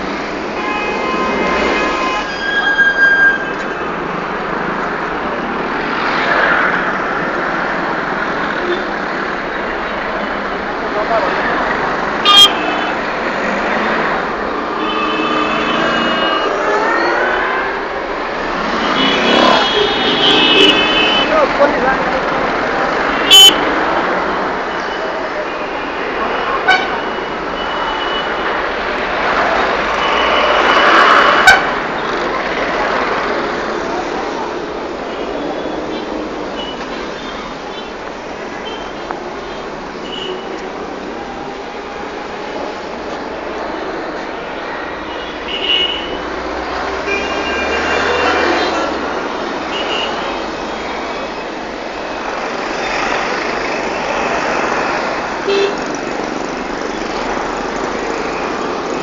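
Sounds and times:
street traffic: 0.0s - 59.0s
car and motorbike horns honking: 12.2s - 13.0s, 18.6s - 21.6s, 23.1s - 23.7s, 26.5s - 27.3s, 47.0s - 48.8s, 55.4s - 56.0s.

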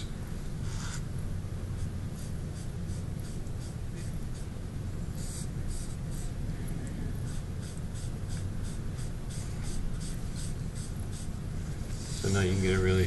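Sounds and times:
steady low hum: 0.0s - 13.0s
cotton pad rubbing chalk on paper: 0.6s - 1.0s, 7.3s - 11.3s, 11.9s - 12.8s.

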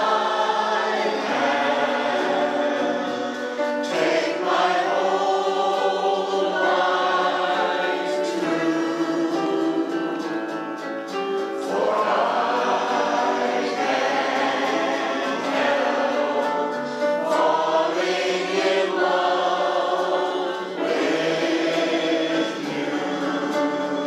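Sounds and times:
digital piano: 0.0s - 24.0s
mixed choir singing: 0.0s - 24.0s.

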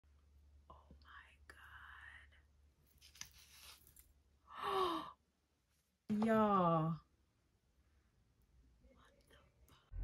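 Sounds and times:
woman whispering: 0.7s - 2.5s, 8.8s - 9.9s
low steady hum: 6.3s - 10.0s.

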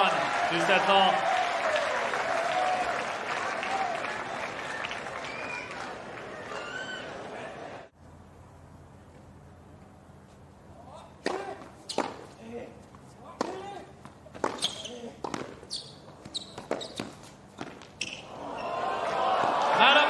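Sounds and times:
crowd noise: 0.0s - 8.0s, 18.3s - 20.0s
racquet hitting tennis ball: 11.2s - 12.4s, 13.3s - 18.2s.

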